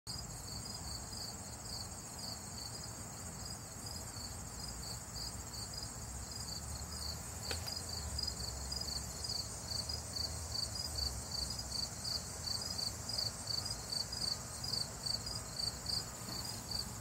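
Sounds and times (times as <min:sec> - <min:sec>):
insect chirp pulsing: 0:00.1 - 0:17.0
insect high-pitched trill: 0:00.1 - 0:17.0.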